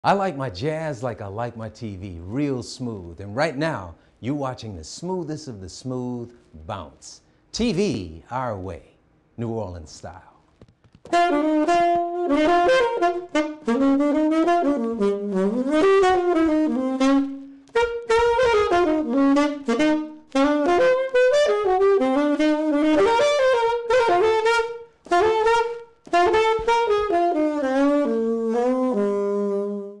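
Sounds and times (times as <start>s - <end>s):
saxophone jazz melody: 11.1s - 30.0s.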